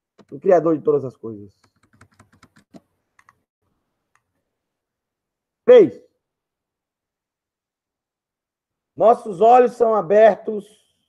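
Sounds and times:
computer keyboard keystrokes: 1.6 - 3.4.

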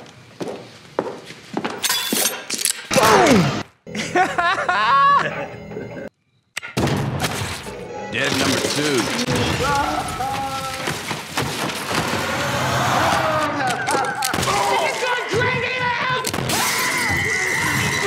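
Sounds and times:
man screaming and wailing: 2.9 - 3.6, 12.2 - 16.0
debris crashing and shattering: 7.2 - 15.4.

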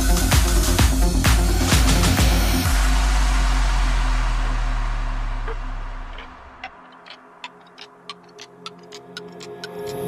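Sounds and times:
clicking percussion ticks: 5.5 - 10.0.

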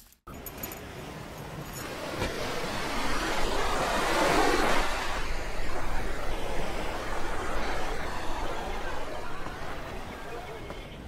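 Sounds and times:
waves breaking on beach: 1.1 - 11.0.

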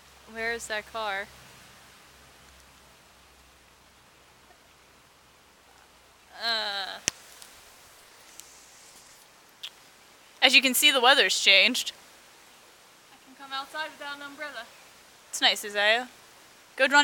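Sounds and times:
background hiss: 0.0 - 17.0
person making wordless vocal sound: 6.3 - 7.1.

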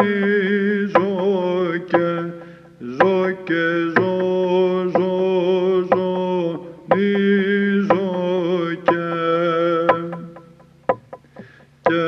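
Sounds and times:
man chanting: 0.0 - 10.5.

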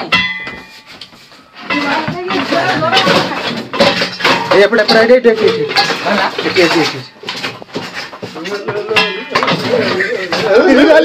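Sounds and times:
stick knocking on pots: 0.0 - 11.0.

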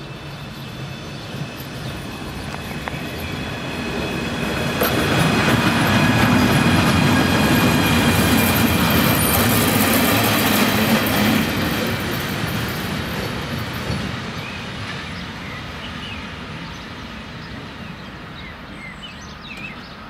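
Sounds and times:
wheels rumbling over rails: 0.0 - 18.6
locomotive high whine: 0.0 - 19.4.

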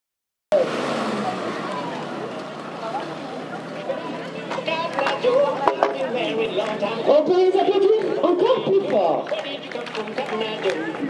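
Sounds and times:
murmur of distant voices: 0.5 - 11.0
outdoor background noise: 0.5 - 11.0.

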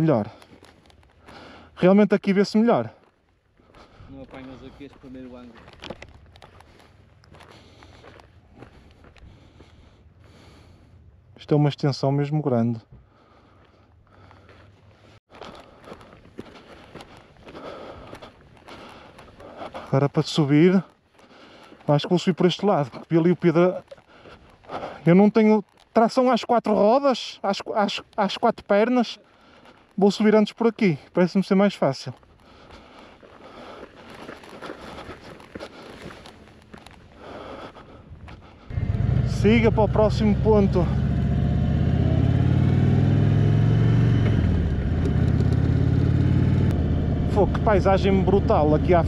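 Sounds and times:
footsteps on stony dirt: 0.0 - 11.3, 12.9 - 26.9, 27.8 - 40.9.

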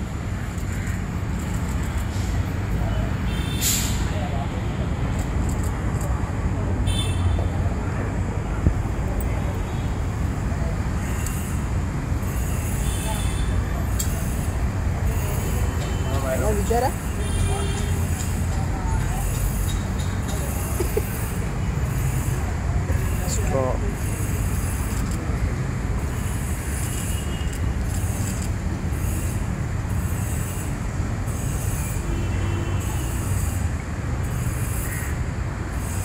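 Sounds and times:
street traffic: 0.0 - 36.0
faint voices: 12.7 - 25.6.

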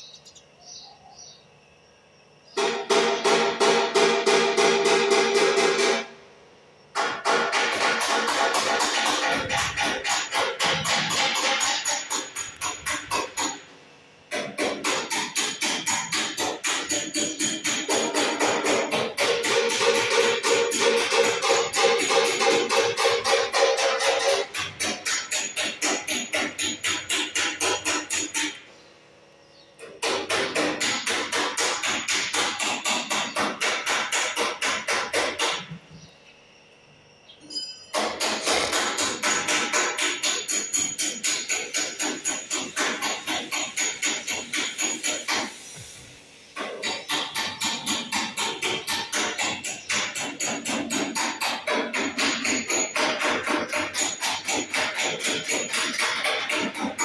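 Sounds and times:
fast sharp knocks: 6.9 - 13.6, 14.3 - 28.6, 29.8 - 35.8, 38.0 - 45.5, 46.6 - 57.0.

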